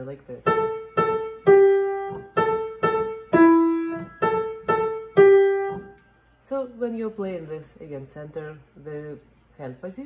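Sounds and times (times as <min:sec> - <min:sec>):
piano single notes: 0:00.4 - 0:06.0.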